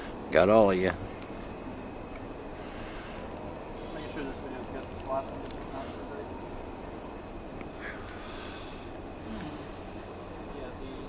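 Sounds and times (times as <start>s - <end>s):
high insect chirps: 0.0s - 11.0s
low background rumble and hiss: 0.0s - 11.0s.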